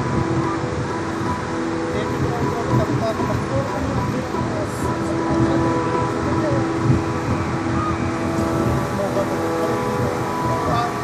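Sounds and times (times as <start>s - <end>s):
pedestal fans running: 0.0s - 11.0s.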